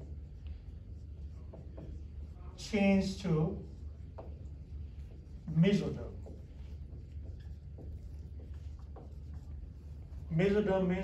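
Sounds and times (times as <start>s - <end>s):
low room hum: 0.0s - 11.0s
marker writing on whiteboard: 0.0s - 11.0s.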